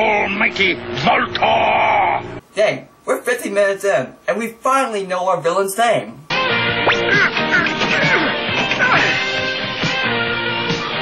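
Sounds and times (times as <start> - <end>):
cartoon music: 6.4 - 9.8
duck-like quacking squawks: 6.8 - 9.3.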